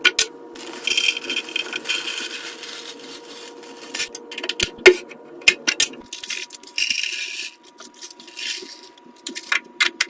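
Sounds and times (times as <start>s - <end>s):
foil bag crinkling: 0.6s - 4.2s, 6.1s - 9.5s
dry flakes rattling into plastic: 0.6s - 4.6s, 6.1s - 9.6s.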